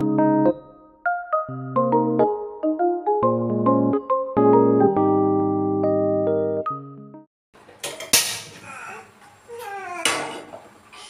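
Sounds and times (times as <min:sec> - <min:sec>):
kitchenware clattering: 0:07.6 - 0:08.6.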